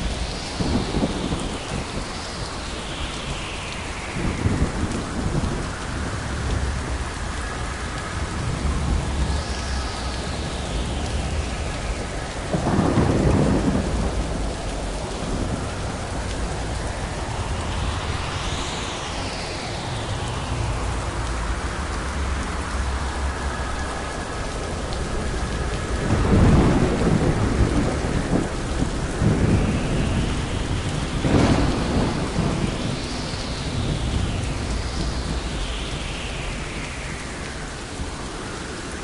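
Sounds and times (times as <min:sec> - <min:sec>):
thunder rolling: 0:00.0 - 0:07.2, 0:07.9 - 0:38.2
steady rain: 0:00.0 - 0:39.0.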